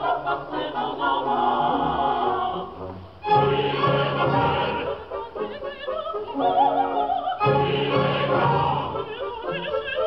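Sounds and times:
opera voices singing: 0.0s - 10.0s.

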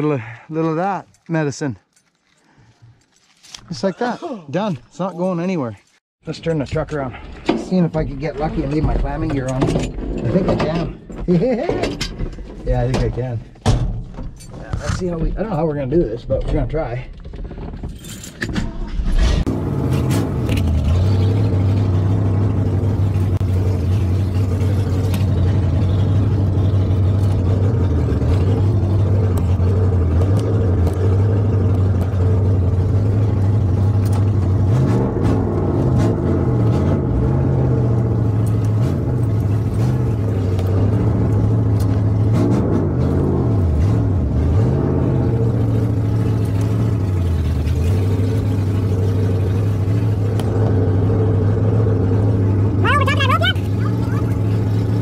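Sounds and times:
pickup truck engine running: 19.5s - 55.0s.

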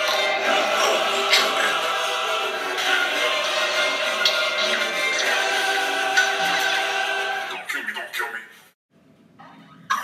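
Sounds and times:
orchestral music: 0.0s - 7.7s.

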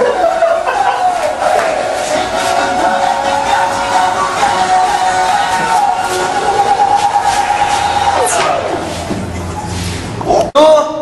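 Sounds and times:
group of voices chanting: 0.0s - 9.1s
loud pop music: 0.0s - 9.8s.

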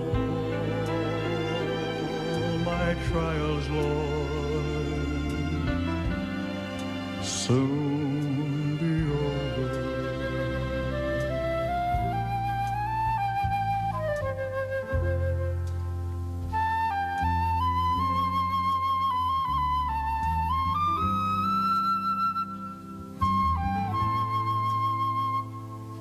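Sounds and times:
flute playing slow melody: 0.0s - 26.0s
soft low band chords: 0.0s - 26.0s.

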